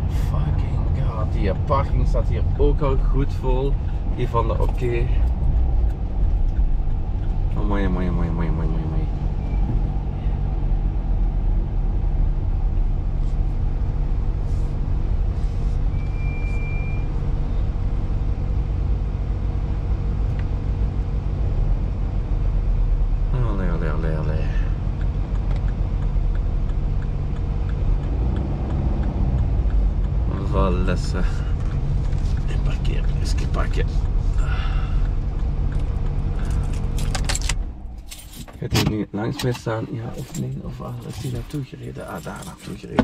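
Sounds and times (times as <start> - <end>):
car engine and road noise: 0.0 - 43.0
short high beep: 15.9 - 17.1.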